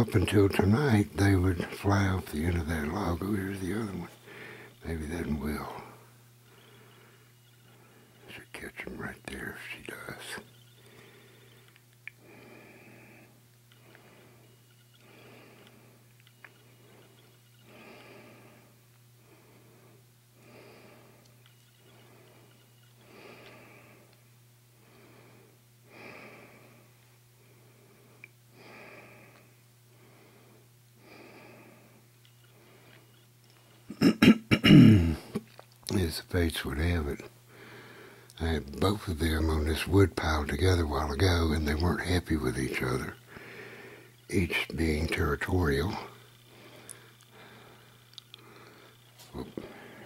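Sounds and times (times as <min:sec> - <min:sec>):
steady low hum: 0:00.0 - 0:50.0
person breathing slowly: 0:04.1 - 0:04.8, 0:05.6 - 0:08.3, 0:10.4 - 0:24.2, 0:24.8 - 0:33.2, 0:37.5 - 0:38.4, 0:43.0 - 0:44.3, 0:45.5 - 0:50.0
man clearing his throat: 0:33.9 - 0:35.4
small clicks: 0:48.0 - 0:49.4.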